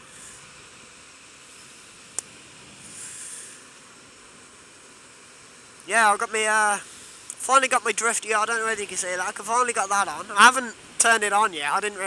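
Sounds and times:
wind and road hiss: 0.0s - 12.0s.

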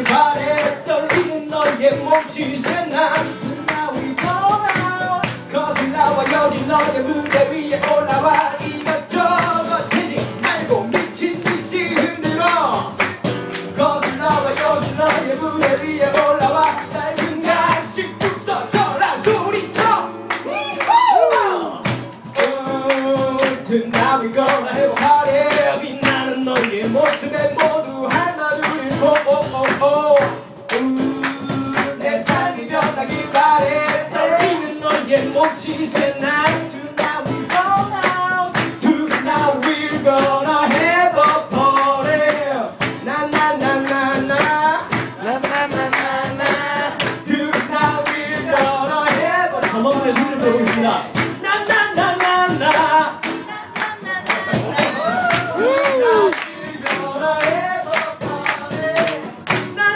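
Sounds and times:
man singing: 0.0s - 59.9s
percussive beat: 0.0s - 59.9s
strummed acoustic guitar: 0.0s - 59.9s.

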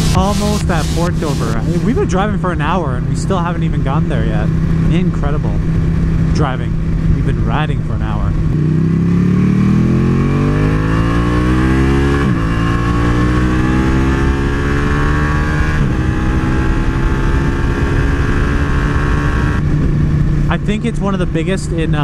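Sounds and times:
wind rushing: 0.0s - 2.2s
motorcycle engine accelerating: 0.0s - 22.0s.

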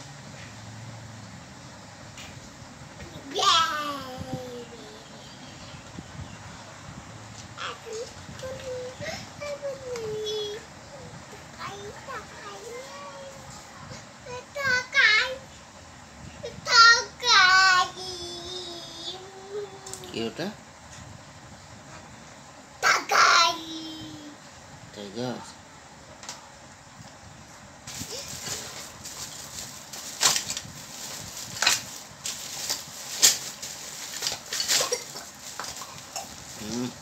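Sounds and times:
child singing wordlessly: 3.0s - 5.4s, 7.6s - 15.6s, 16.4s - 20.1s, 22.9s - 24.4s
plastic toys clattering in bag: 27.9s - 36.9s
plastic bag rustling and crinkling: 27.9s - 37.0s.

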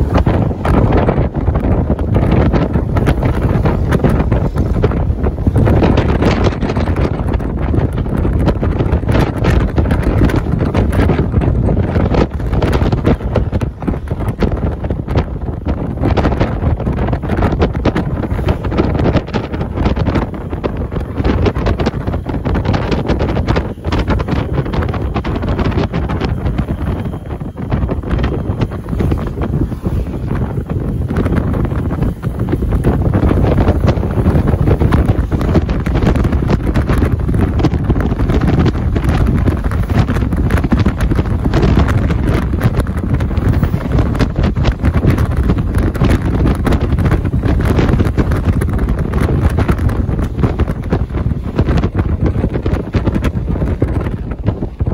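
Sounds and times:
vehicle rumbling on road: 0.0s - 54.9s
wind buffeting microphone: 0.0s - 54.9s.

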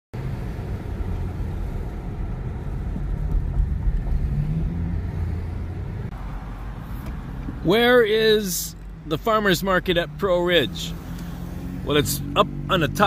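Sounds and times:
car engine and road noise: 0.1s - 13.0s.

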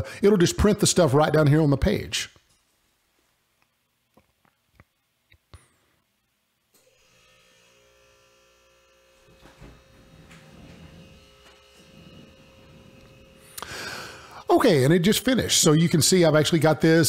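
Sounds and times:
electrical hum and whine: 6.7s - 17.0s.

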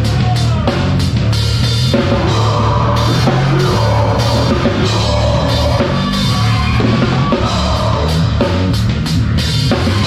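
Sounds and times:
drum kit played hard: 0.0s - 10.0s
heavy guitars and bass: 0.0s - 10.0s.

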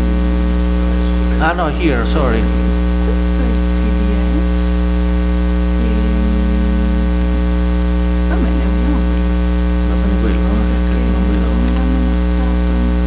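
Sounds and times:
loud electrical mains hum: 0.0s - 13.0s.

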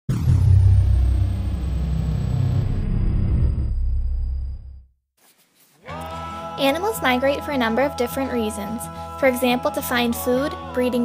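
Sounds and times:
deep loud rumble: 0.1s - 4.9s.

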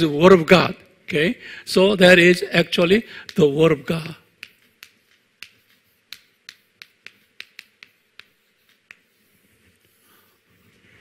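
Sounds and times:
chalk tapping on chalkboard: 2.7s - 10.9s.

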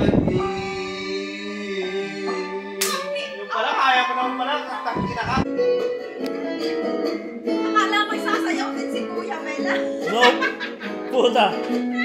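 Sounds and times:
harmonica holding a chord: 0.4s - 7.5s.

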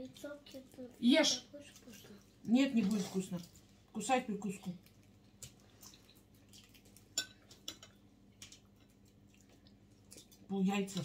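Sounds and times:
tableware clicks and taps: 7.2s - 8.0s.

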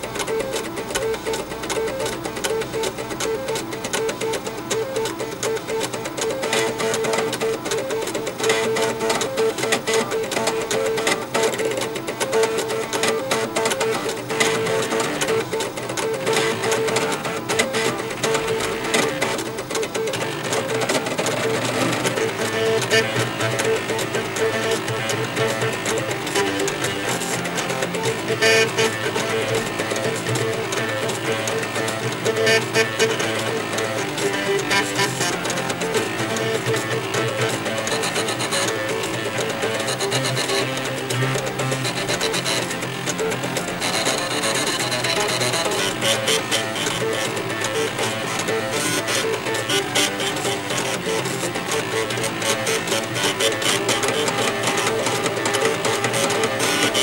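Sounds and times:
floppy disk drives playing a tune: 0.0s - 57.0s.

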